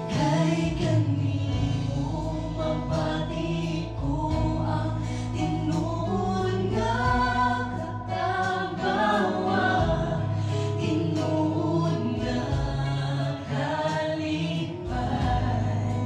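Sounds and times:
group singing in harmony: 0:00.0 - 0:16.0
low keyboard notes: 0:00.0 - 0:16.0.

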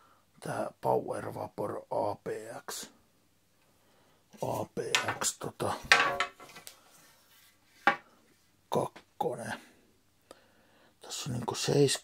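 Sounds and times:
hockey sticks clattering: 0:04.9 - 0:06.7.

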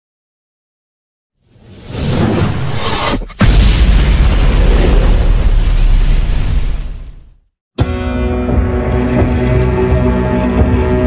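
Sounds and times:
music: 0:07.8 - 0:11.0.

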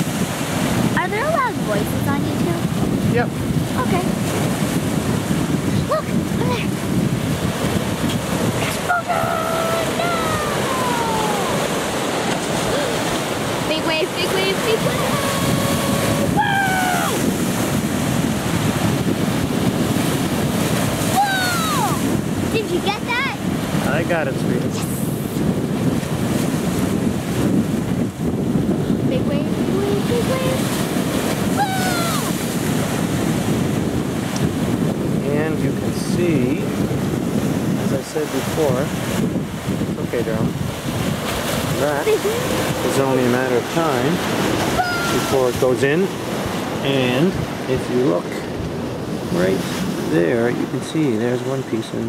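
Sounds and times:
sea waves breaking over rocks: 0:00.0 - 0:52.0
wind buffeting microphone: 0:00.0 - 0:52.0.

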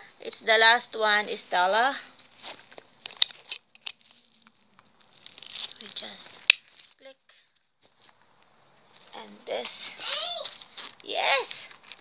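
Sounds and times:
clothes and bags rustling: 0:01.1 - 0:12.0.

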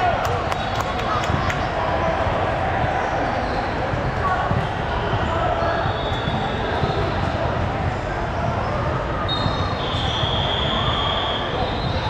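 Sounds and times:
voices echoing in a hall: 0:00.0 - 0:12.0.

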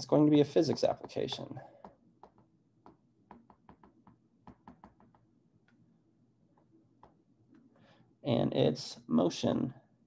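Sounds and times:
stylus tapping on glass screen: 0:00.6 - 0:05.8, 0:06.5 - 0:07.2.

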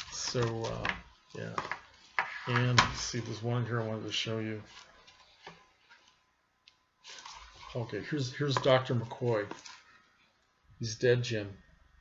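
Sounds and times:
book pages turning ticks: 0:00.1 - 0:01.8.

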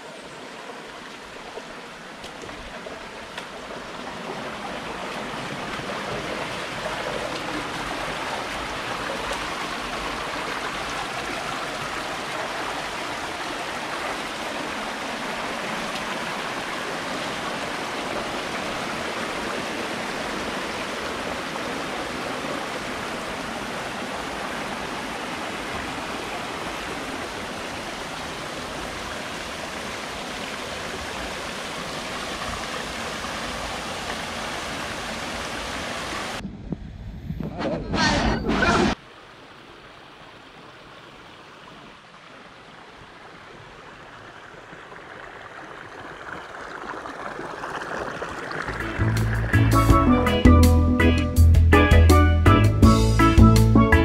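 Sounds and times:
water rushing over rocks: 0:00.0 - 0:36.4, 0:37.9 - 0:49.8.

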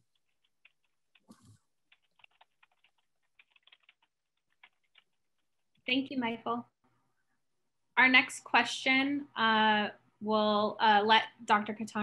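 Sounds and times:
typing on computer keyboard: 0:00.1 - 0:05.7.

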